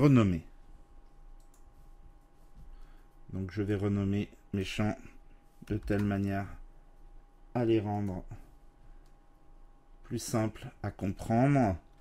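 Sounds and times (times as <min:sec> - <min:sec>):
computer mouse clicks: 0:01.0 - 0:01.8, 0:05.6 - 0:06.4.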